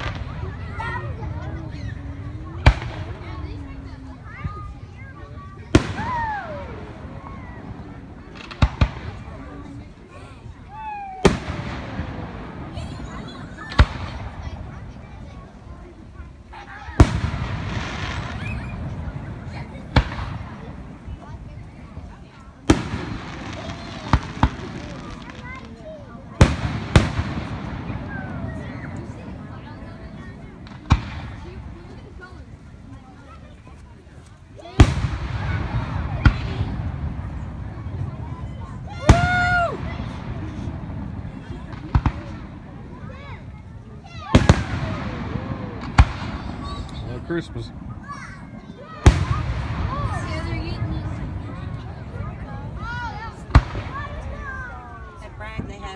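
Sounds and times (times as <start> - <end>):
firework shells booming: 0.0 - 5.0, 5.6 - 10.0, 11.2 - 15.8, 16.6 - 32.1, 34.8 - 55.7.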